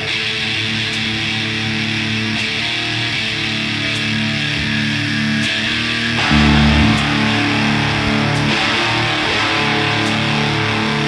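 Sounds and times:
electric guitars sustained chords: 0:06.2 - 0:10.7.

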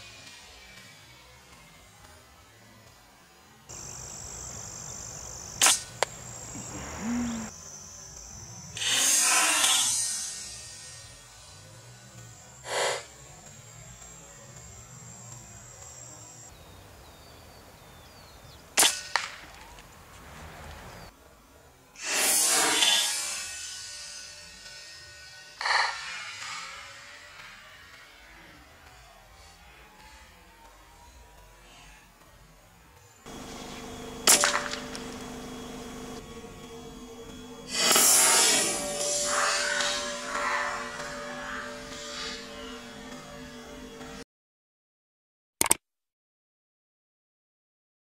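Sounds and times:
air rifle firing: 0:34.2 - 0:35.3.

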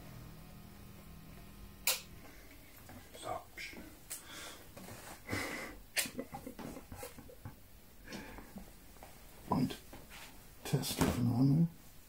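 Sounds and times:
sharp click: 0:01.8 - 0:02.1.

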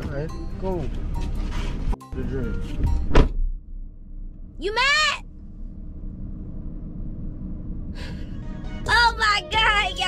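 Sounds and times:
car engine idling: 0:02.9 - 0:10.0.

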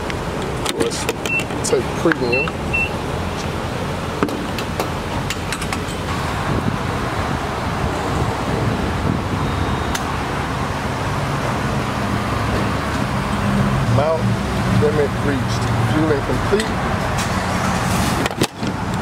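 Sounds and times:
fuel flowing and pump hum: 0:00.0 - 0:19.0.

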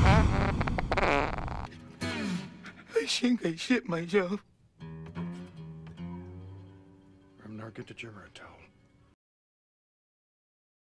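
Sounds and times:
loud rumbling fart: 0:00.0 - 0:01.7.

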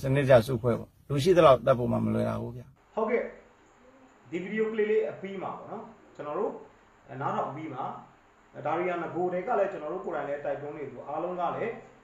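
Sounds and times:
man speaking: 0:00.0 - 0:03.4, 0:04.3 - 0:12.0.

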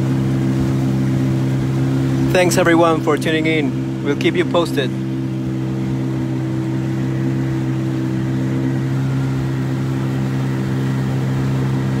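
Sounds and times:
boat motor humming: 0:00.0 - 0:12.0.

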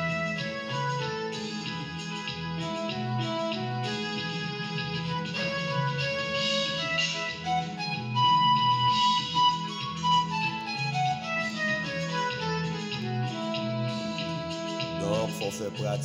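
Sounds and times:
keyboard melody solo: 0:00.0 - 0:16.0
repeating bass accompaniment: 0:00.0 - 0:16.0.

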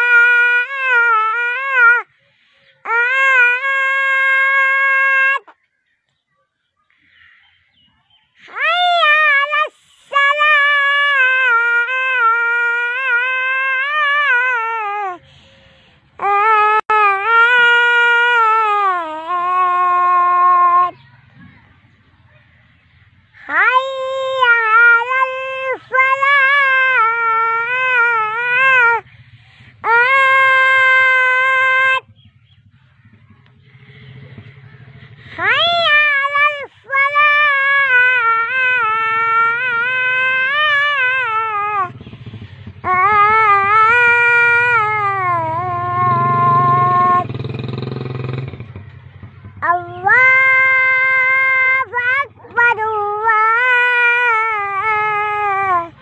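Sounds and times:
high-pitched voice chanting: 0:00.0 - 0:48.4, 0:49.5 - 0:56.0.

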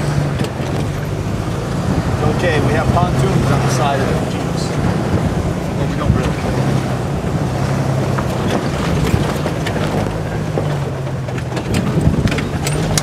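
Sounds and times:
car engine running: 0:00.0 - 0:13.0
wind on microphone: 0:00.0 - 0:13.0
knocks and rattles: 0:04.7 - 0:13.0.

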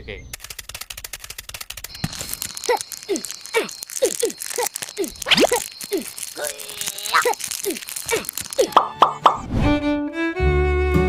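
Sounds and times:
plopping sound effects: 0:08.8 - 0:09.5.

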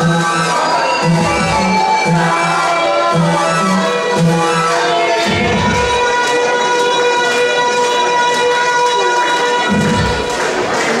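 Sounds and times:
high tones droning: 0:00.0 - 0:10.7
electronic noise music: 0:00.0 - 0:11.0.

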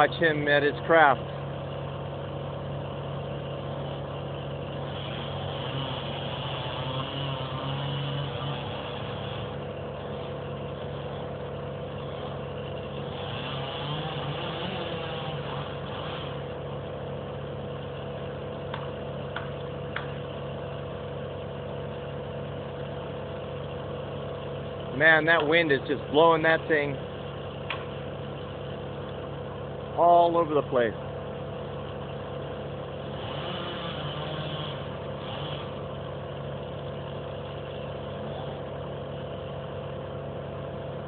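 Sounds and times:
distant chainsaw running: 0:00.0 - 0:41.0.

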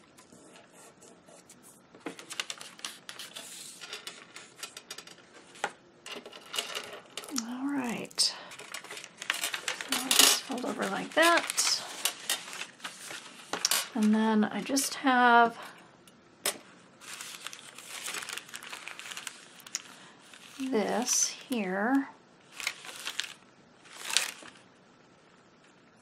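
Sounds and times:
paper rustling: 0:00.0 - 0:14.2, 0:17.0 - 0:21.6, 0:22.5 - 0:24.6.

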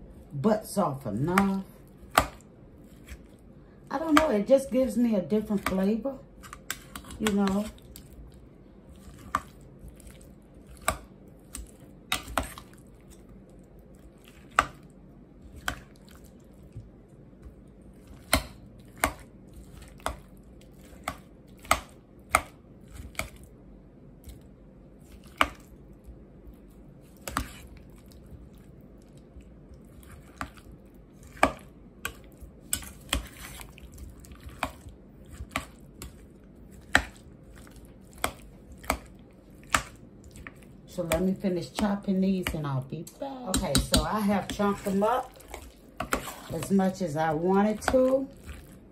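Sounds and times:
metal spoon knocking in pot: 0:43.5 - 0:44.2.

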